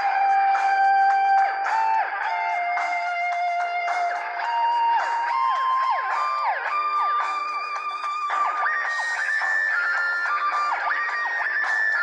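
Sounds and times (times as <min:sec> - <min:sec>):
electric guitar solo: 0:00.0 - 0:12.0.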